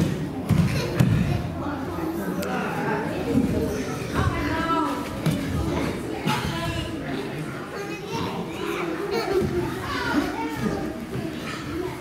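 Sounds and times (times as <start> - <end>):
hubbub of many voices: 0.0 - 12.0.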